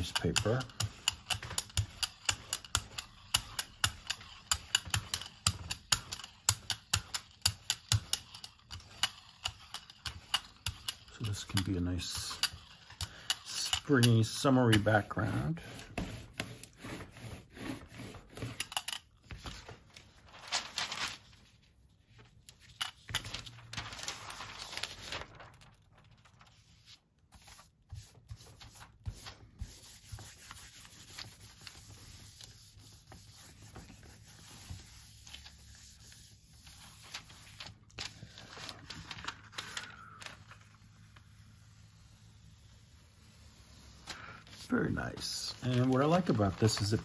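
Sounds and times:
paper peeled off plate: 20.2 - 21.5, 23.1 - 27.6
hand rubbing paper on plate: 26.8 - 37.7, 41.3 - 47.0.

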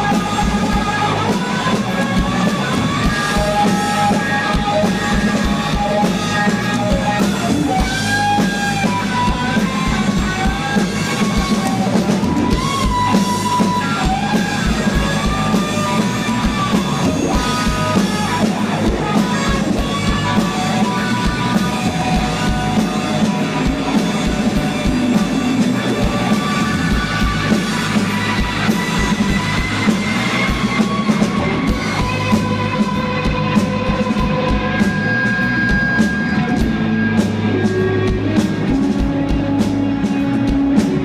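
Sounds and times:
live rock band playing: 0.0 - 41.0.

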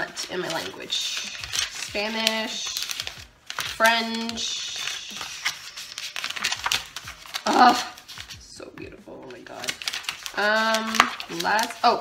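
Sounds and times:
paper pages being turned: 0.0 - 12.0.

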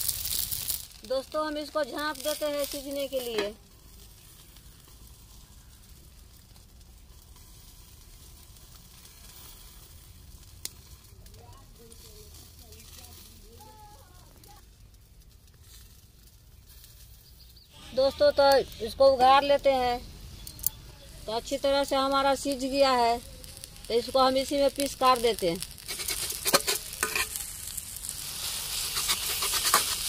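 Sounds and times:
muffled frying sizzle: 0.0 - 30.0.

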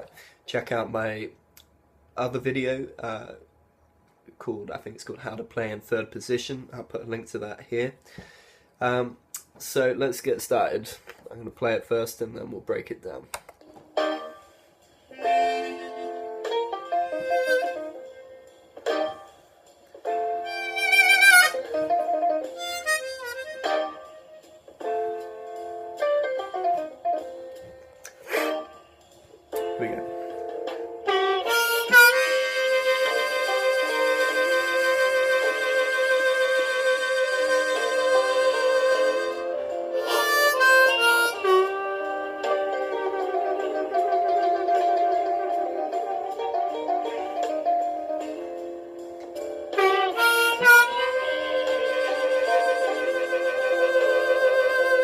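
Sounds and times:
harmonica melody: 15.1 - 19.2, 20.4 - 24.6, 28.0 - 29.0, 31.0 - 48.5, 49.6 - 55.0.

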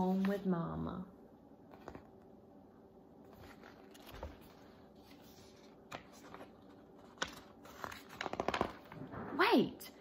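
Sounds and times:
paper rustling: 1.7 - 2.3, 3.2 - 9.1.

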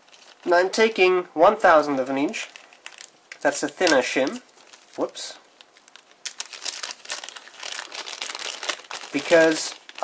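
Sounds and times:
plastic film crinkling: 0.0 - 1.0, 1.8 - 10.0.

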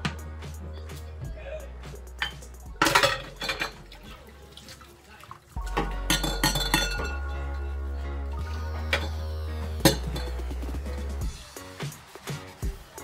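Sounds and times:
background music: 0.0 - 13.0
pot and dishes clattering: 2.2 - 4.8, 5.7 - 7.2, 9.8 - 10.5
water splashing: 2.8 - 6.7.

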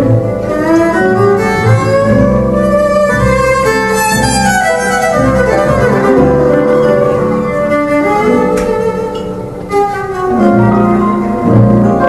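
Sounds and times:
bowed violin: 0.0 - 12.0
cello: 0.0 - 12.0
double bass: 0.0 - 12.0.

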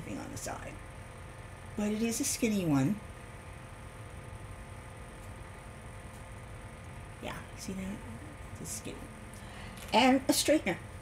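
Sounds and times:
faint hum: 0.0 - 11.0
low background hiss: 0.0 - 11.0.

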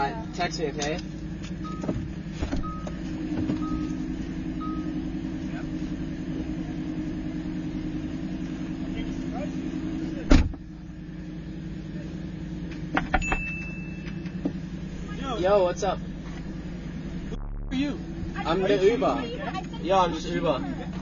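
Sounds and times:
car engine idling: 0.0 - 21.0
loud thump: 17.4 - 18.4.

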